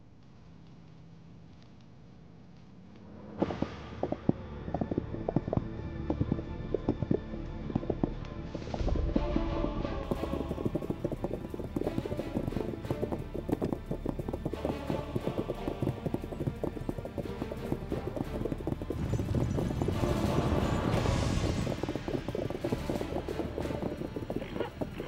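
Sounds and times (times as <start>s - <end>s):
horses galloping: 0.2s - 25.0s
background music: 3.1s - 25.0s.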